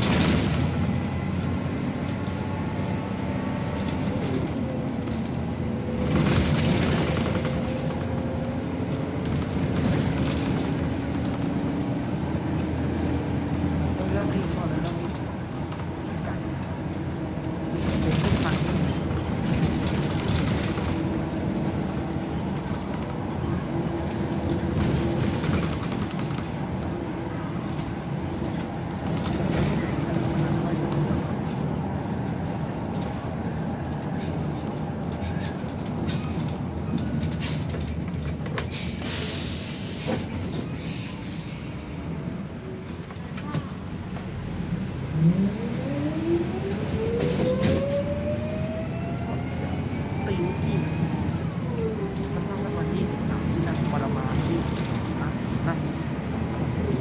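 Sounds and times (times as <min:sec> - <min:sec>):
bus engine rumbling: 0:00.0 - 0:57.0.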